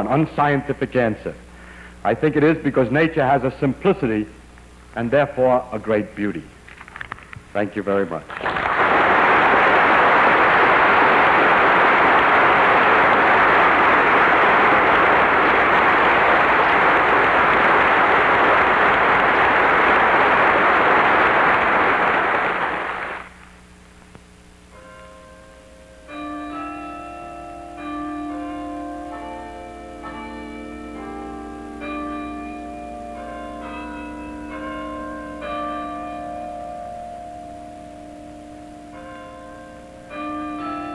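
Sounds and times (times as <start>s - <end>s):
audience applauding: 8.3s - 23.4s.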